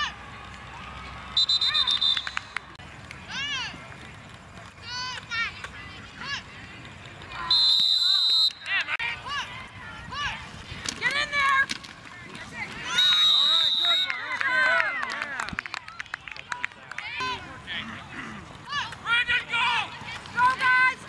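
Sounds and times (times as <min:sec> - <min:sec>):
referee's whistle blasts: 0:01.4 - 0:02.6, 0:07.4 - 0:08.7, 0:12.9 - 0:14.2.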